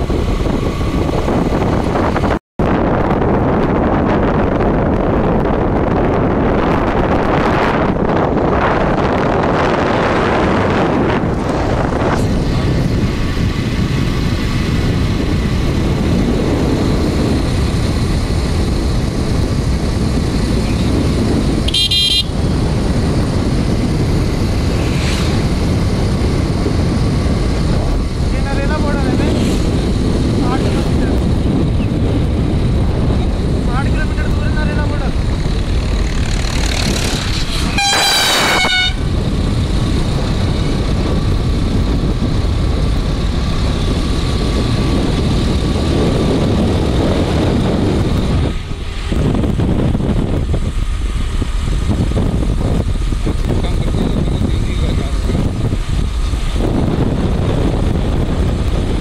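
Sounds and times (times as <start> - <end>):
motorcycle engine: 0.0 - 59.0
wind rushing over microphone: 0.0 - 59.0
loud vehicle horn blast: 21.6 - 22.5, 37.6 - 39.1
short high horn beep: 21.7 - 22.4, 37.7 - 39.0.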